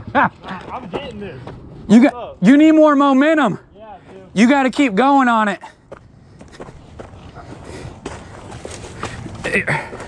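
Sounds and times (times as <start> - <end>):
footsteps on dirt and dry leaves: 6.0 - 10.0.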